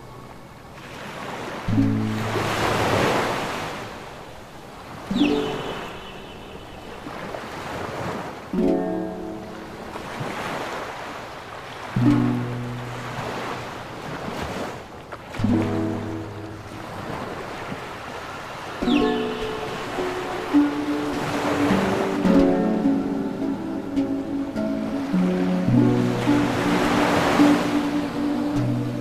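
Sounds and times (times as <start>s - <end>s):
ocean surf washing: 0.0s - 29.0s
soft relaxing music with chords: 0.0s - 29.0s.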